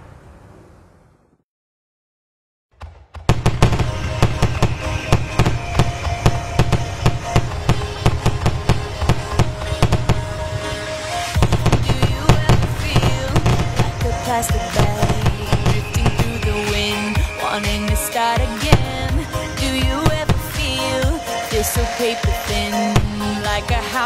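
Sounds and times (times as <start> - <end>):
fireworks bursting and crackling: 3.2 - 24.0
music with held notes: 3.8 - 24.0.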